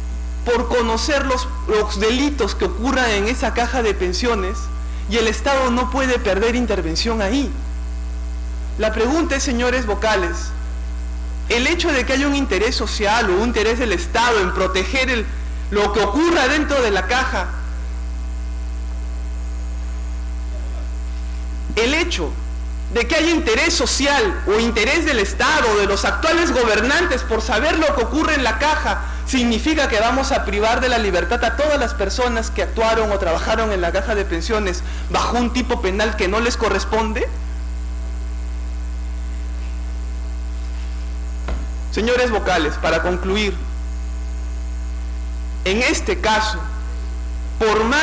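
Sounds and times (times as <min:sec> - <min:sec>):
electrical mains hum: 0:00.0 - 0:48.0.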